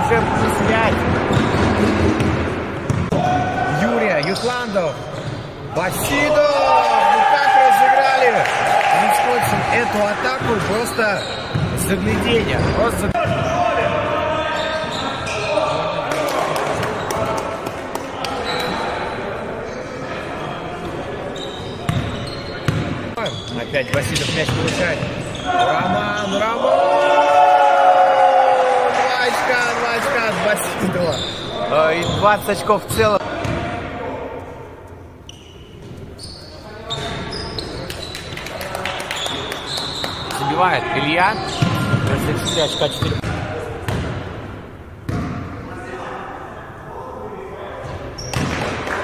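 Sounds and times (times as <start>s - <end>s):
players' voices in large hall: 0.0s - 49.0s
basketball bouncing: 0.8s - 3.2s, 43.9s - 44.2s.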